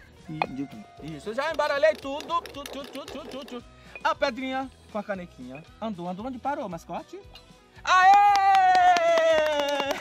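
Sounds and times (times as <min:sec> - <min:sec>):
quick hand clapping: 0:08.0 - 0:10.0.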